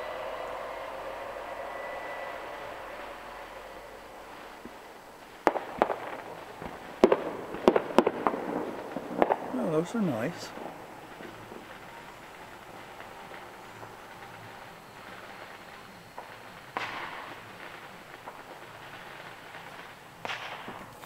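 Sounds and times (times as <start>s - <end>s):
distant fireworks bangs: 0.0s - 21.0s
outdoor hiss: 0.0s - 21.0s.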